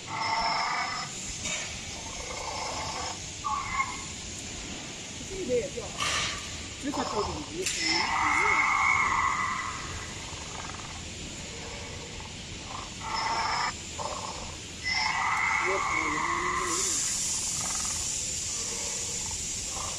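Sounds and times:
recorded raptor calls: 0.0s - 19.9s
steady hiss: 0.0s - 19.9s.

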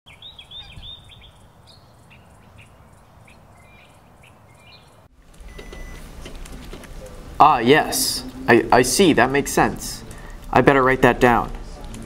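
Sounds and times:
small birds chirping: 0.1s - 6.0s.

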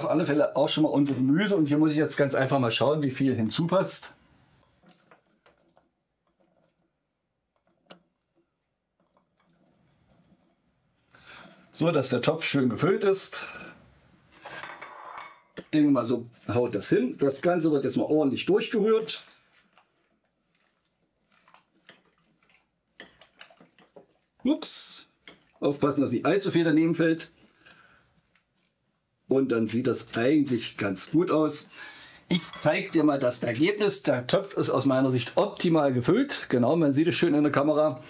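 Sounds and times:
spatula stirring food in broth: 4.2s - 11.7s, 13.9s - 33.1s.

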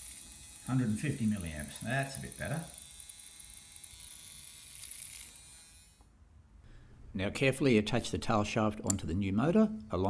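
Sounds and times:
small motor whining: 0.0s - 6.1s.

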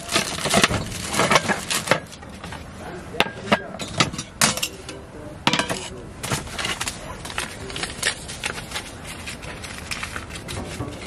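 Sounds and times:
cookware knocking and clinking: 3.2s - 4.9s, 5.5s - 5.9s.

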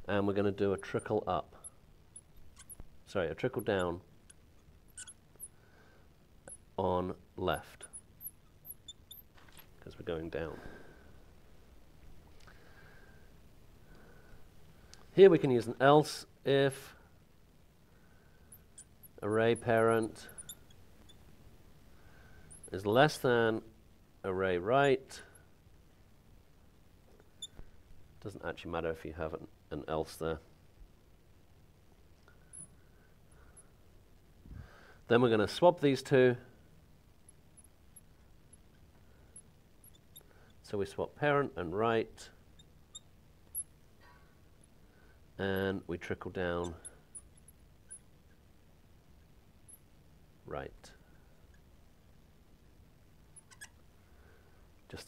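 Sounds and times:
marker squeak: 0.8s - 2.9s, 3.6s - 5.6s, 6.5s - 6.7s, 7.7s - 9.6s, 18.6s - 21.2s, 22.5s - 22.8s, 27.3s - 27.7s, 39.4s - 40.6s, 42.6s - 43.8s, 46.6s - 48.4s, 53.4s - 53.8s
marker scratching on glass: 2.2s - 2.9s, 3.6s - 5.6s, 7.8s - 9.4s.

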